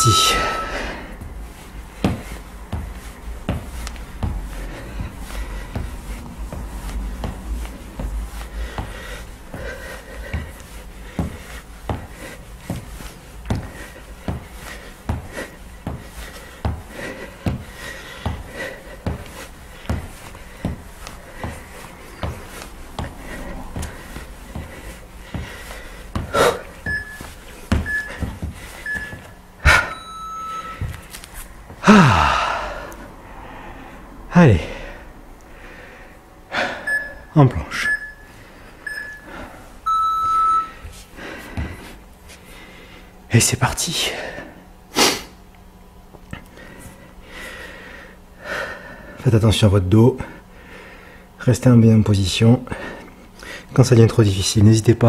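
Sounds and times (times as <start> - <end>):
short electronic beeps: 0.0 - 1.0, 26.9 - 28.2, 28.9 - 29.2, 29.8 - 30.8, 36.9 - 38.3, 38.9 - 39.3, 39.9 - 40.8
feet knocking on floor: 2.0 - 29.8, 40.2 - 41.9
panting breath: 8.1 - 27.1.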